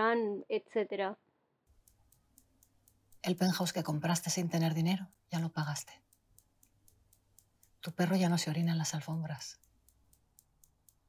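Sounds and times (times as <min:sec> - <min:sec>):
faint light clicking: 0:01.7 - 0:11.0.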